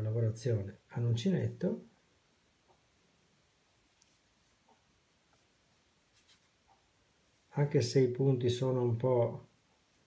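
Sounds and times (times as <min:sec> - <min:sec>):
yarn rustling in hands: 0:03.5 - 0:07.6.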